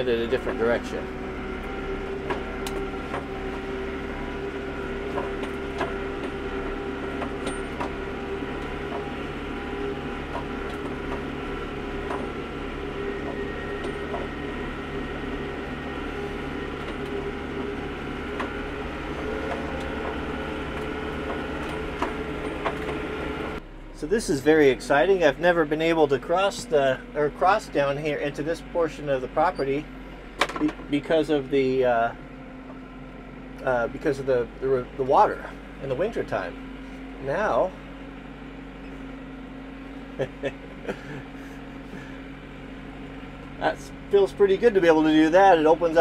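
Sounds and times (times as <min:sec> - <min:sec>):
tractor diesel engine running: 0:00.0 - 0:46.0.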